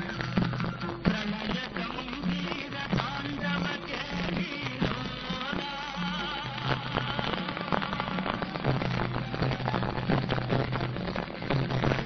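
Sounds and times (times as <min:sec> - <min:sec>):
rapid dense percussion: 0:00.0 - 0:12.0.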